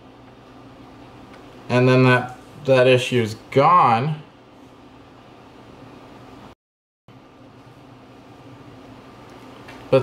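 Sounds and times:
faint room hum: 0:00.0 - 0:10.0.

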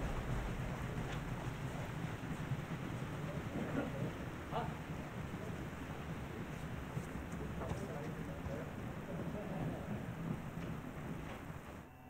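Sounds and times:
low rumbling noise: 0:00.0 - 0:11.7.

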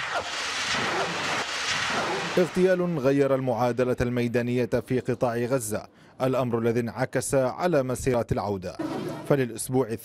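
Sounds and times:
steady rushing roar: 0:00.0 - 0:03.0.

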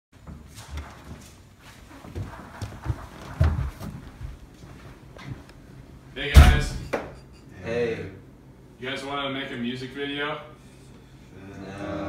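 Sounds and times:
footsteps on a hard floor: 0:00.2 - 0:05.5
door opening with thumps and clicks: 0:06.3 - 0:07.2.

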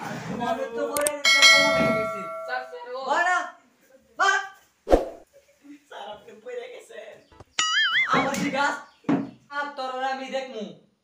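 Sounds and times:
sharp metallic clang: 0:01.3 - 0:02.7.

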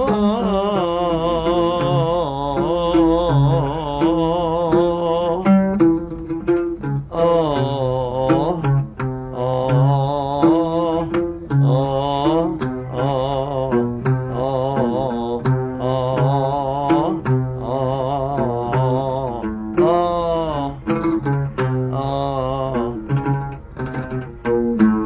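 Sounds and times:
oud plucking: 0:00.0 - 0:25.0
wavering sung melody: 0:00.0 - 0:25.0.

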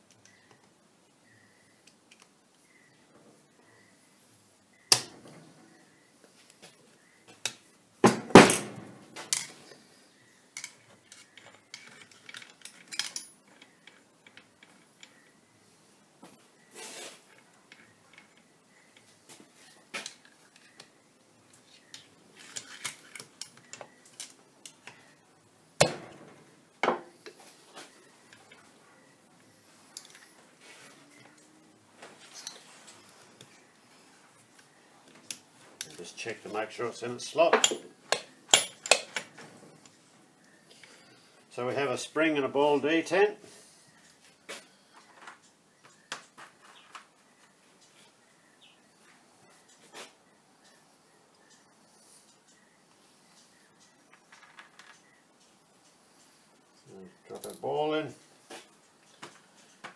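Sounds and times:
metal parts clinking and knocking: 0:10.6 - 0:15.2, 0:22.4 - 0:24.8, 0:37.5 - 0:39.4.

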